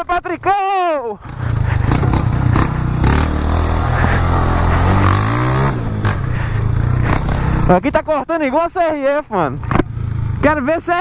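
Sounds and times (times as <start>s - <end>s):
motorcycle engine revving: 1.2s - 8.2s, 9.6s - 10.7s.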